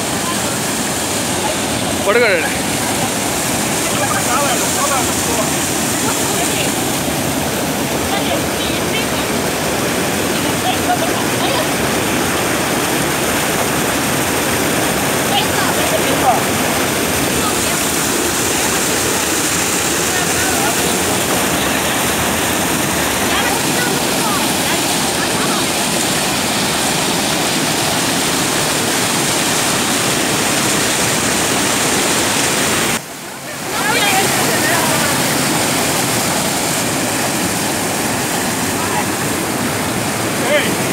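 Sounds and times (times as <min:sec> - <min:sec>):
water rushing over a dam: 0:00.0 - 0:40.9.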